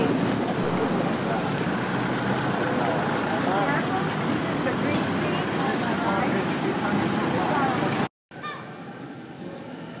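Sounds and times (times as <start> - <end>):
town traffic: 0.0 - 10.0.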